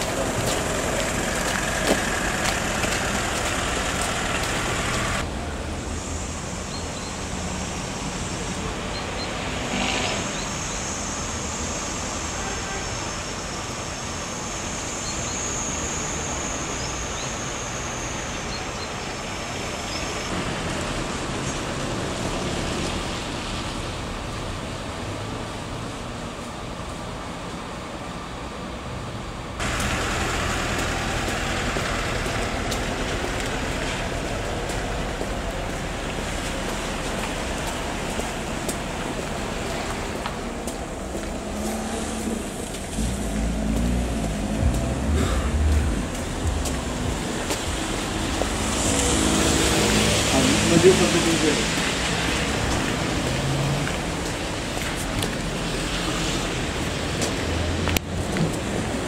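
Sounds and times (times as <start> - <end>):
cars on a wet road: 0.0 - 59.0
indistinct voices: 41.6 - 53.8.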